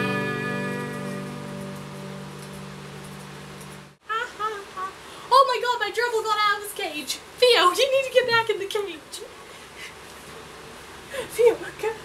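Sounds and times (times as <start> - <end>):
low steady background noise: 0.0 - 12.0
rustling and handling sounds: 0.5 - 4.0.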